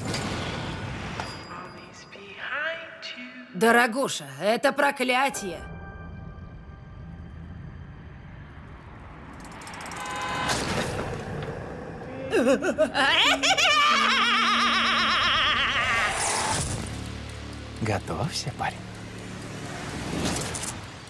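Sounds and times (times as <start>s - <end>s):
woman cackling laughter: 12.3s - 16.1s.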